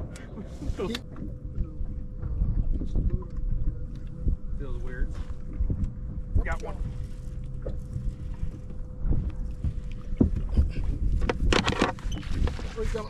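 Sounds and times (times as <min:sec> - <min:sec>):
faint steady hum: 0:00.0 - 0:13.0
water noise: 0:00.0 - 0:13.0
wind: 0:00.0 - 0:13.0
fishing gear rattling and scraping: 0:11.1 - 0:13.0.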